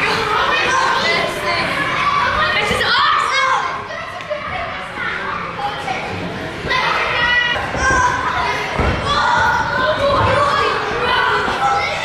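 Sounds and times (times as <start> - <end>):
children calling out and chattering: 0.0 - 12.0.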